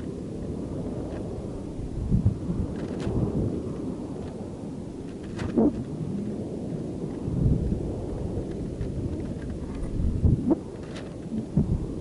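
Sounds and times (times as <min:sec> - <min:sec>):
low rumble of air buffeting: 0:00.0 - 0:12.0.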